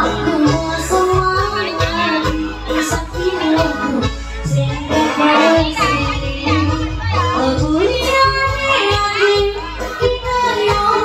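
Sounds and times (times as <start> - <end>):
electronic keyboard with bass beat: 0.0 - 11.0
woman singing pop song: 0.0 - 11.0.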